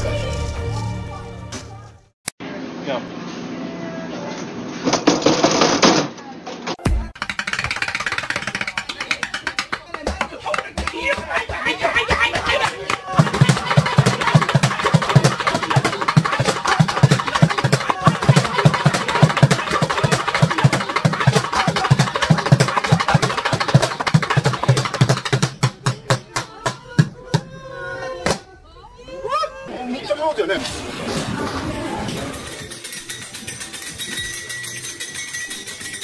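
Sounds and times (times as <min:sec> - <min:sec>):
drumsticks on plastic buckets: 0:07.1 - 0:27.2.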